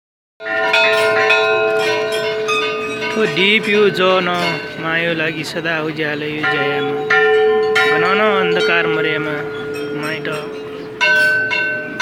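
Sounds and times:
bell ringing: 0.4 - 12.0.

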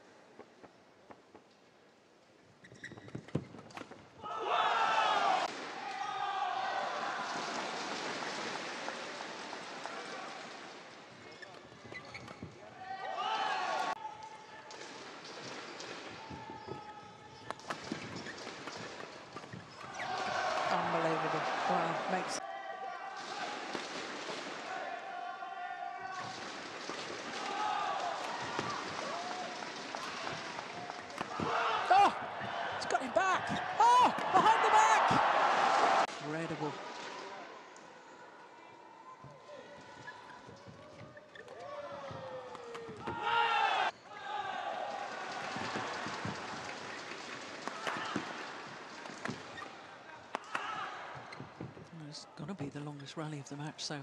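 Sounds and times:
crowd cheering and shouting: 4.2 - 7.7, 12.9 - 14.0, 27.4 - 36.1, 41.6 - 46.3.

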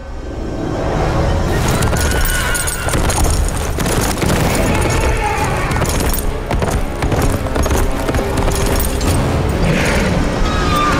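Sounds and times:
music: 0.0 - 10.9
horse hooves galloping: 1.6 - 9.6.

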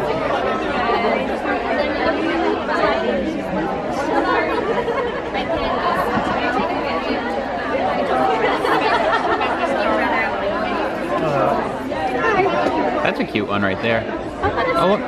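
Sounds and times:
crowd chatter in a hall: 0.0 - 15.0.

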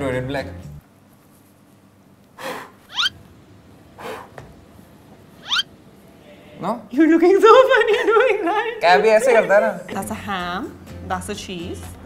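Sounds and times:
squeak sliding upward in pitch: 2.9 - 3.1, 5.4 - 5.7.

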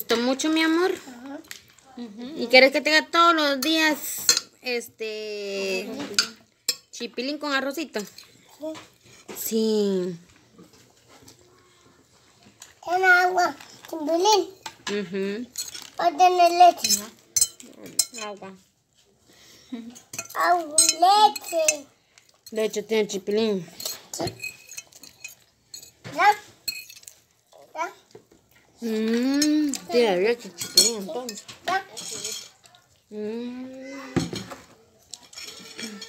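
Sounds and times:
woman speaking: 2.0 - 6.2, 9.4 - 10.2, 28.8 - 31.4
child vocal sound: 33.2 - 34.7.

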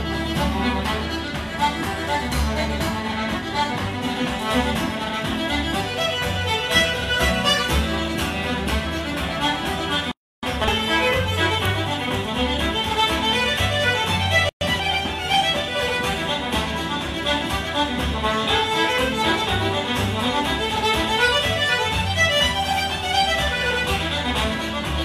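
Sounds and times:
button accordion: 0.0 - 25.0
fiddle playing dance tune: 0.0 - 25.0
guitar accompaniment: 0.0 - 25.0.

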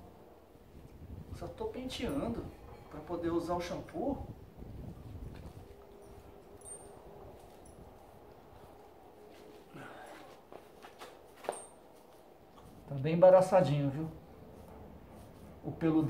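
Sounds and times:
hairbrush strokes through fur: 14.3 - 16.0.

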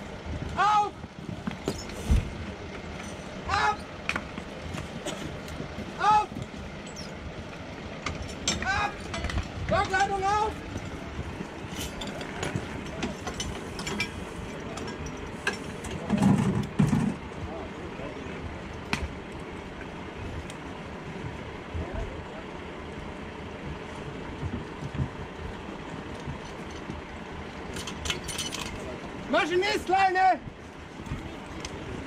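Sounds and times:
steady low rumble: 0.0 - 29.7
metallic clanks of hose couplings: 8.0 - 11.0, 11.6 - 17.2, 27.7 - 29.0.

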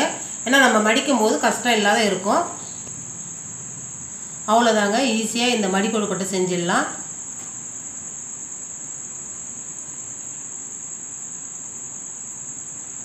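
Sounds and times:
crickets trilling: 0.0 - 13.0
faint hiss: 0.0 - 13.0.

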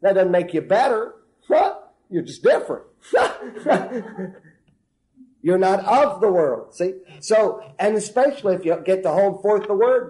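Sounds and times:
man chuckling: 3.1 - 4.7.

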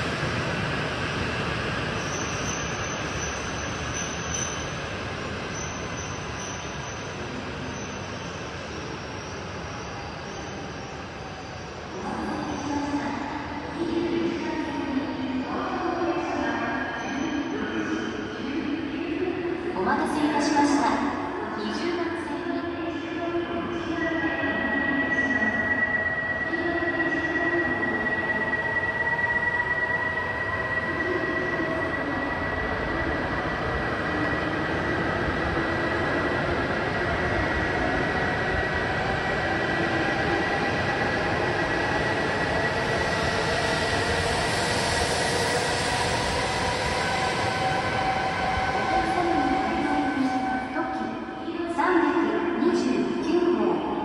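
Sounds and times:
train high whine: 0.0 - 54.0
train rolling noise: 26.9 - 50.7.

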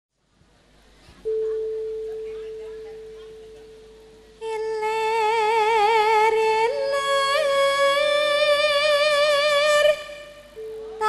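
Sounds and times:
faint background chatter: 0.3 - 4.6
pure musical note ringing: 1.2 - 4.7.

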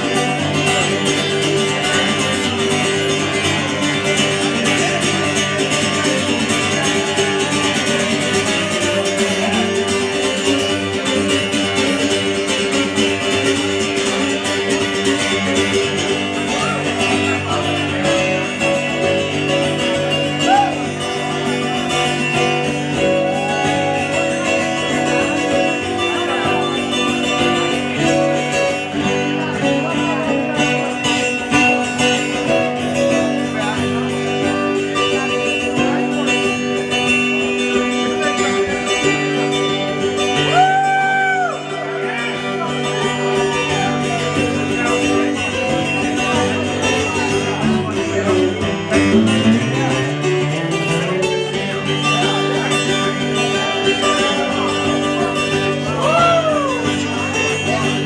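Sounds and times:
twelve-string acoustic guitar: 0.0 - 58.0.

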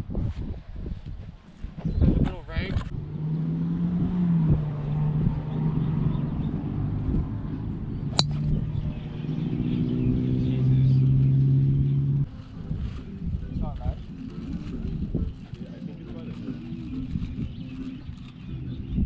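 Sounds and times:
golf club striking ball: 8.1 - 8.7.

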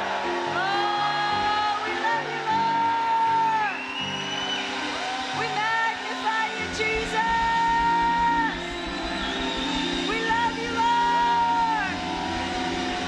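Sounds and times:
worship band playing chords: 0.0 - 13.0
low bass: 6.8 - 13.0.

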